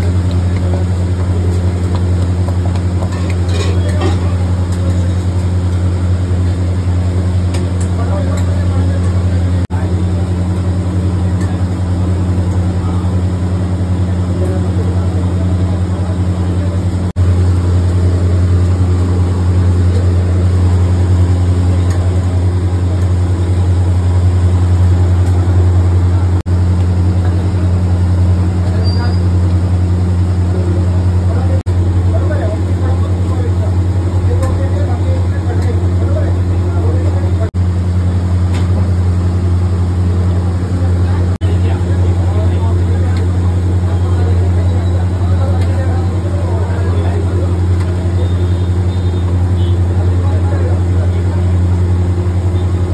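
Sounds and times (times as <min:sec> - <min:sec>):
low machine hum: 0:00.0 - 0:52.9.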